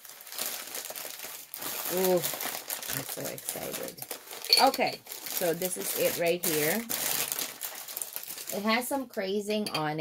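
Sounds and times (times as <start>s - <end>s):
packing paper crinkling: 0.0s - 8.9s.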